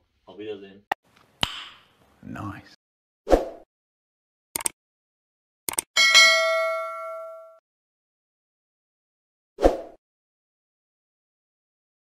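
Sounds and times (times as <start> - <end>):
notification bell ding: 6.0 - 7.6.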